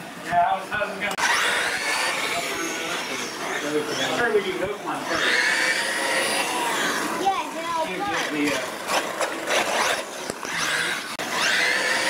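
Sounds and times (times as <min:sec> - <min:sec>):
toy truck motor whining: 0:01.1 - 0:12.0.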